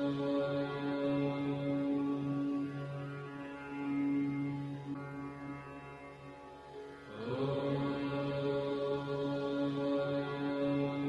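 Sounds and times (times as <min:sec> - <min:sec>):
mantra chanting: 0:07.1 - 0:11.0.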